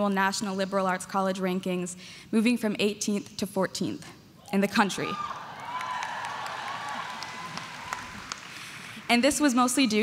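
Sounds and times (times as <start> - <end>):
audience applause: 5.5 - 9.2.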